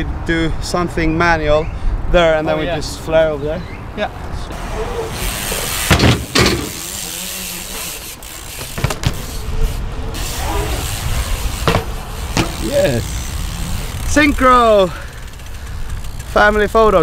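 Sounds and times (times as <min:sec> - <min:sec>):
bike tyres rolling on concrete: 0:04.4 - 0:17.0
sharp knocks from bikes: 0:05.7 - 0:07.1, 0:07.8 - 0:09.4, 0:11.5 - 0:13.0.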